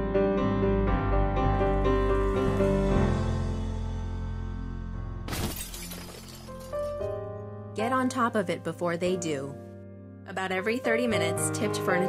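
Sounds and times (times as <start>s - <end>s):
music: 0.0s - 12.0s
television crashing and glass shattering: 5.3s - 7.0s.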